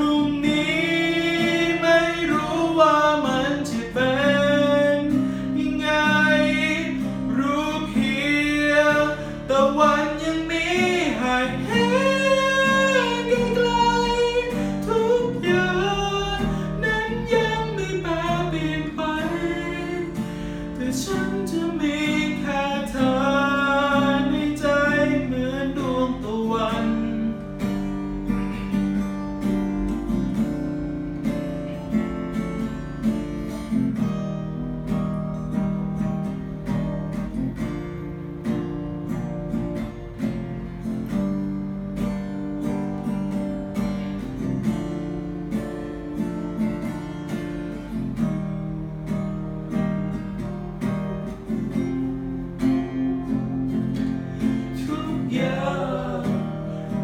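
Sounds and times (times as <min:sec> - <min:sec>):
man singing: 0:00.0 - 0:27.6, 0:50.4 - 0:57.0
acoustic guitar: 0:00.0 - 0:57.0.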